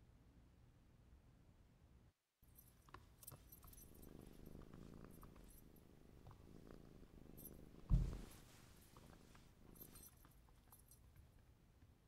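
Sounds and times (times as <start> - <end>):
collar tag jingling: 2.5 - 11.4
cat purring: 2.6 - 11.0
thump: 7.8 - 8.4.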